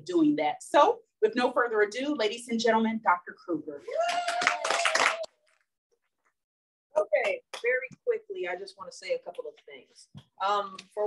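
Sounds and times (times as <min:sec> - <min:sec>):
hands clapping: 0:04.0 - 0:05.7, 0:07.2 - 0:08.0.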